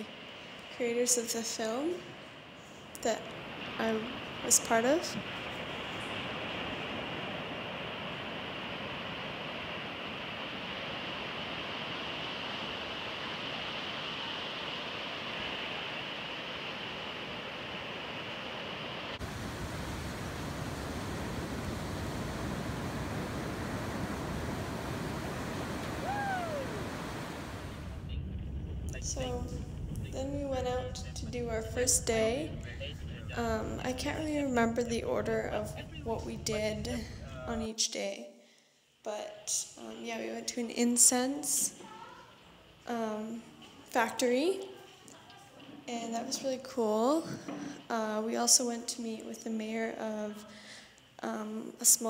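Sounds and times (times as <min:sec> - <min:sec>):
waves breaking on pebble beach: 0:02.0 - 0:28.1
brief falling whistle: 0:26.0 - 0:26.8.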